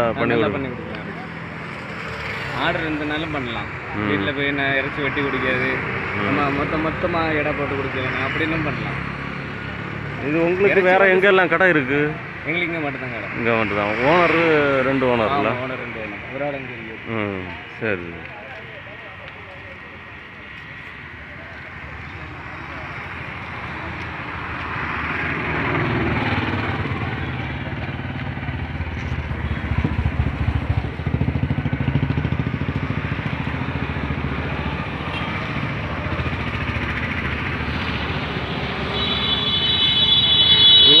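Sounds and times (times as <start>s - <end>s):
vehicle engine and traffic rumble: 0.0s - 41.0s.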